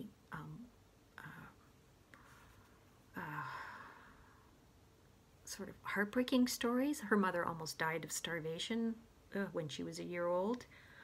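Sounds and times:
woman breathing: 0:01.3 - 0:04.7, 0:10.6 - 0:11.0.

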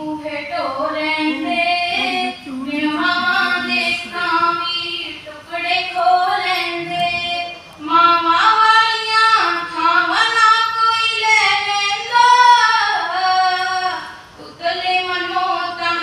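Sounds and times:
woman singing slow melody: 0:00.0 - 0:16.0.

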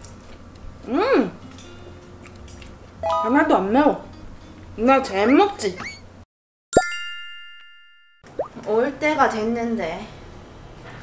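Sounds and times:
bright bell-like ding: 0:06.8 - 0:08.2.

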